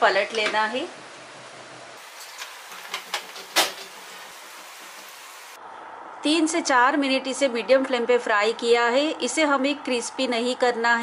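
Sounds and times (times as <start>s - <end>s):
batter deep-frying sizzling: 1.3s - 5.6s.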